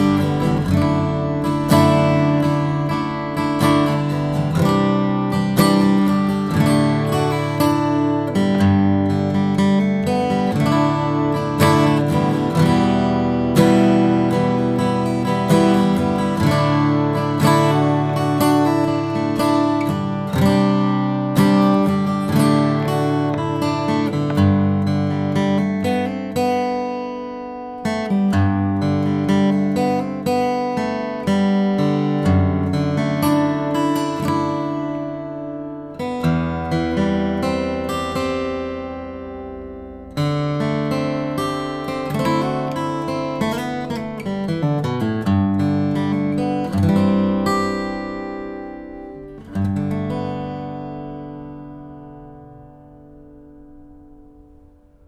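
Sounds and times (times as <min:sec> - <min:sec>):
fingerstyle acoustic guitar: 0:00.0 - 0:55.0.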